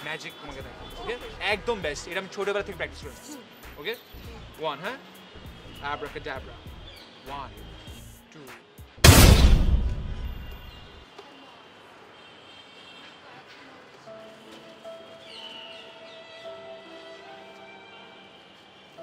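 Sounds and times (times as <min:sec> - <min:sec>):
soft background music: 0:00.0 - 0:11.0, 0:13.8 - 0:19.0
loud boom with deep rumble: 0:09.0 - 0:10.8.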